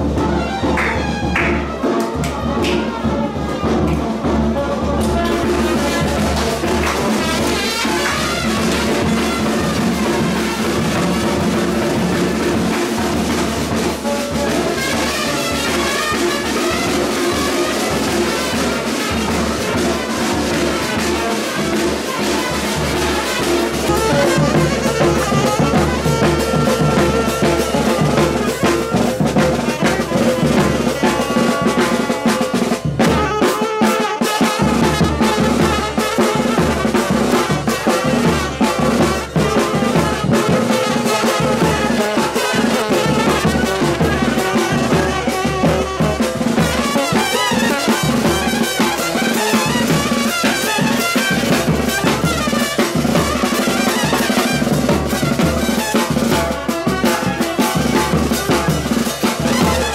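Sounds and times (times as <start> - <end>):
dance music with horns and drums: 0.0 - 59.9.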